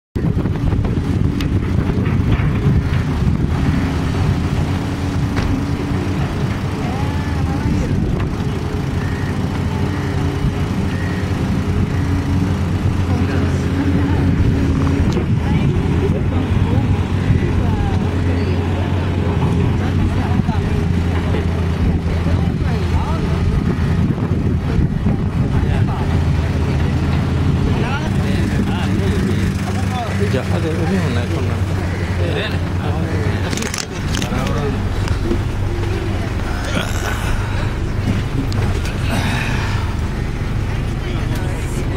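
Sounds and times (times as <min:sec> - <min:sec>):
low engine rumble: 0:00.2 - 0:41.9
wind buffeting microphone: 0:00.2 - 0:41.9
people talking: 0:04.2 - 0:41.9.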